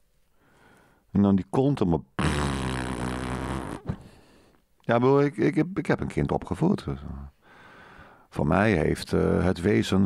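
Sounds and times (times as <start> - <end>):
man's low rough throat sound: 2.2 - 4.0.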